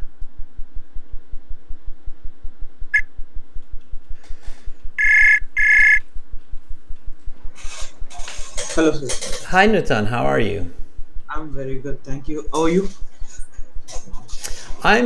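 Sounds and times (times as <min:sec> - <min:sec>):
fast low pulsing: 0:04.9 - 0:07.3
double ring high tone: 0:05.0 - 0:06.0.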